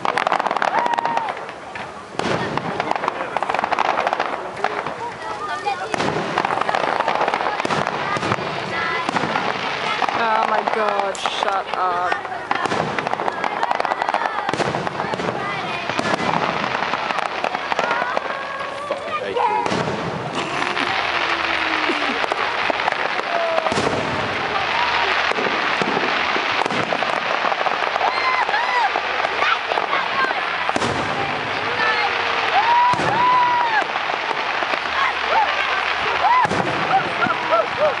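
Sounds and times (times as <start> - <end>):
continuous wash of noise: 0.0 - 38.0
firework shells bursting: 0.0 - 38.0.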